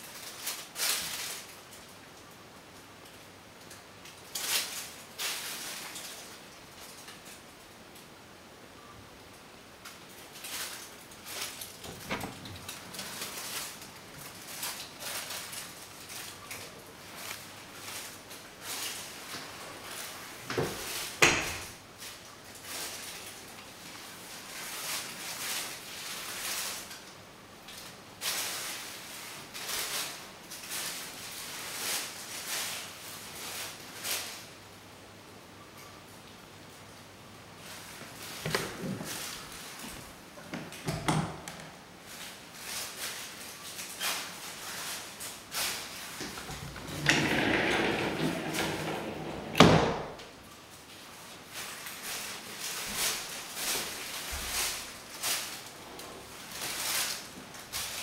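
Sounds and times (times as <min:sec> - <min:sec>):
soft shuffling footsteps: 0:42.0 - 0:50.2, 0:51.4 - 0:58.0
sliding door rolling rumble: 0:46.2 - 0:50.2.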